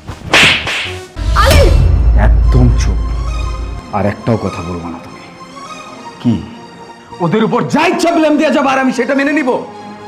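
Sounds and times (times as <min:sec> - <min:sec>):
hard slap across face: 0:00.3 - 0:01.1
deep low boom: 0:01.2 - 0:04.0.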